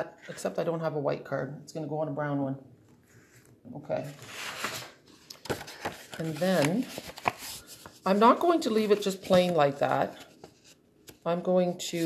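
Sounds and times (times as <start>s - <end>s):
paper rustling on a tabletop: 3.0s - 12.0s.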